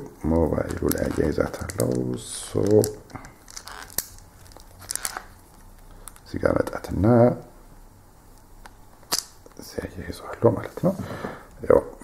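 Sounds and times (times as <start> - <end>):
clicks and crinkling: 0.4 - 6.9, 8.3 - 9.6.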